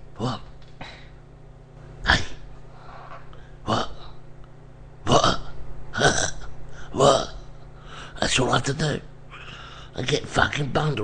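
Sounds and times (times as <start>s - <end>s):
man making vocal sounds: 0.1s - 0.7s, 2.0s - 2.5s, 3.6s - 4.2s, 5.0s - 7.5s.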